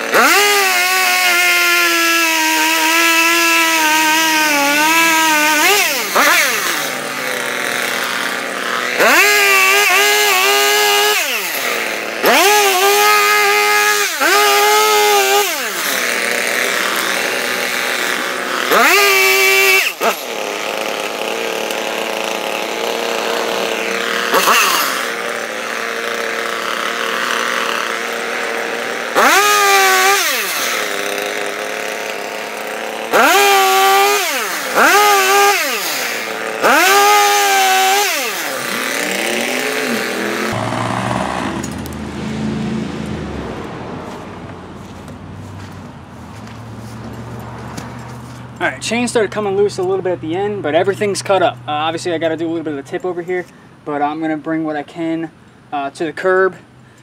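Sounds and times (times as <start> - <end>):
chainsaw revving: 0.0 - 55.1.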